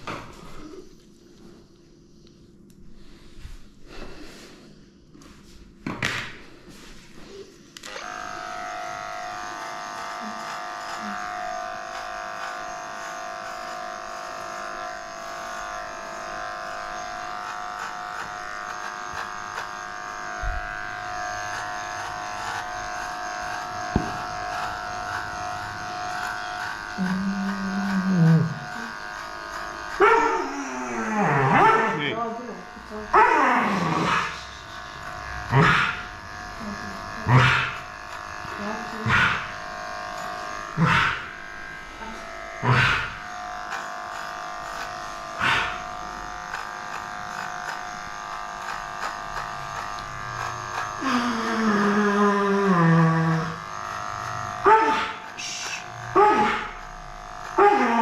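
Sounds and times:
electric clippers humming: 7.2 - 58.0
dog crying out: 30.0 - 32.2, 33.1 - 34.4, 54.6 - 56.7, 57.6 - 58.0.

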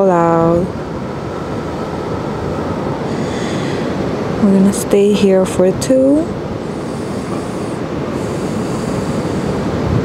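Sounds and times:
outdoor background rush: 0.0 - 10.0.

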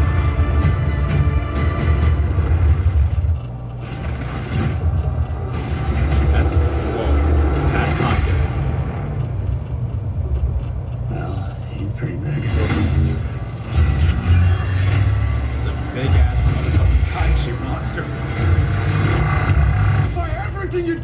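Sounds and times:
deep rumbling sound effects: 1.1 - 20.5.

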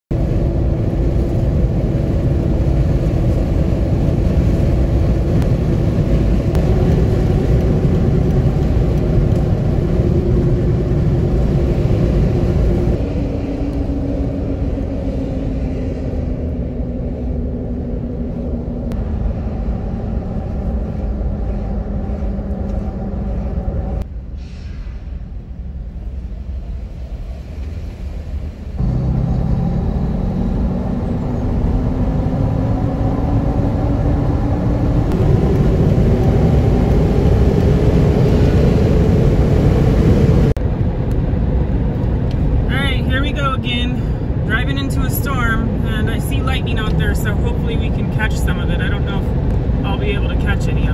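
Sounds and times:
car engine and tyre rumble: 0.1 - 50.9.

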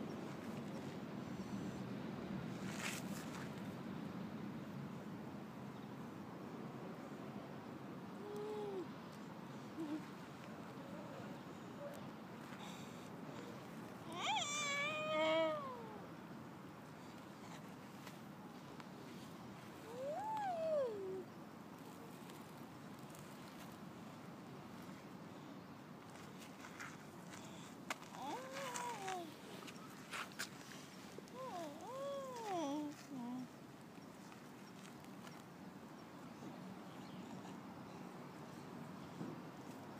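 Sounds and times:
long drawn-out cry: 14.1 - 16.1.

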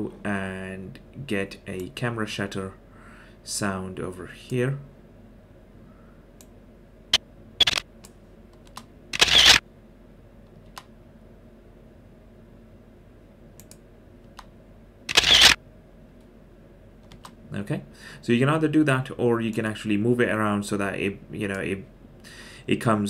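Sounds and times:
camera shutter snap: 7.6 - 7.8, 9.2 - 9.6, 15.1 - 15.6.

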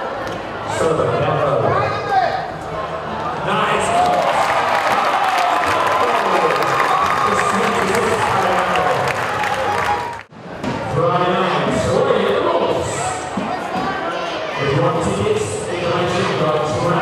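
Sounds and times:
crowd cheering and applauding: 3.8 - 10.3.

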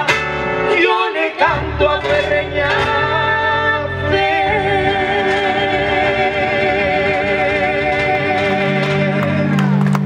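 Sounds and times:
guitar accompaniment: 0.0 - 10.0.

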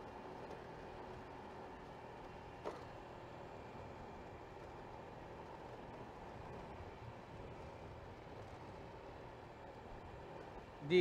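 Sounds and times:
road and wind noise: 0.0 - 11.0
scooter engine hum: 0.0 - 11.0.

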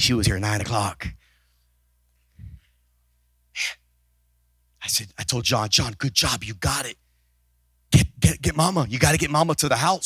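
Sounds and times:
man speaking: 0.0 - 1.2, 4.8 - 7.0, 8.0 - 10.0.

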